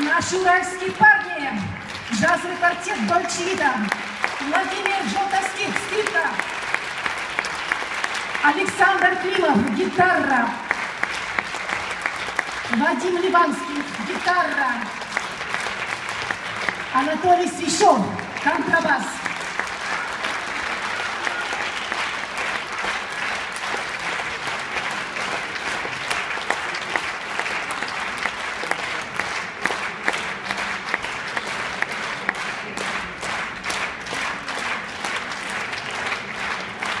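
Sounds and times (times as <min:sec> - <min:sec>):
audience applauding: 0:00.0 - 0:37.0.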